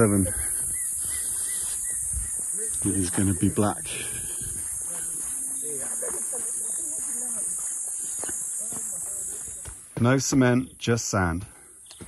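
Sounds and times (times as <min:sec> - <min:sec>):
faint voices: 0:00.0 - 0:10.2
crickets chirping: 0:00.0 - 0:12.0.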